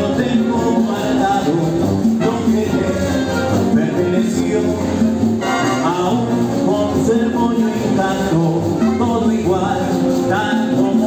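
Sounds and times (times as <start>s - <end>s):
wind band playing: 0.0s - 11.0s.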